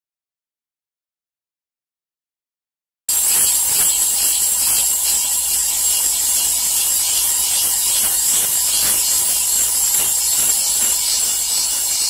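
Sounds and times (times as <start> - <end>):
grinder wheel grinding steel: 3.1 - 12.0
hum of spinning wheel: 3.1 - 12.0.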